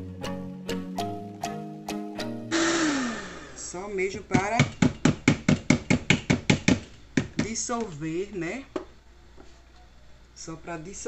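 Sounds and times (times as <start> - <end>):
mixer beaters knocking on bowl: 4.1 - 8.0.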